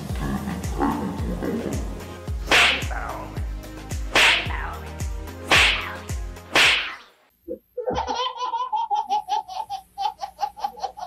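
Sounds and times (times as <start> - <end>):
background music: 0.0 - 6.8
whip-like swishes: 2.4 - 2.9, 4.0 - 4.6, 5.5 - 7.0
baby laughing: 7.8 - 11.0.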